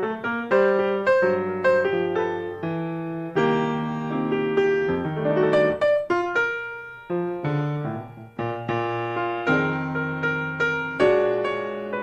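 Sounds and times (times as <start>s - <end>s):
slow gentle piano melody: 0.0s - 12.0s.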